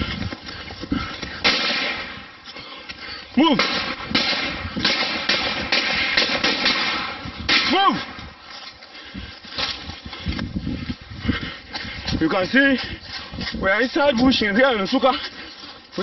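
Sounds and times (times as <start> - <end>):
quick footsteps: 0.0 - 16.0
rustling vegetation: 0.0 - 16.0
man shouting: 7.6 - 8.1.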